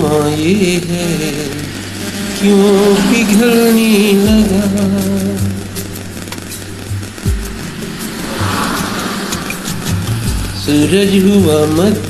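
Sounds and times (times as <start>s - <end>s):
low bass notes: 0.0s - 12.0s
soft low drum thumps: 4.2s - 11.5s.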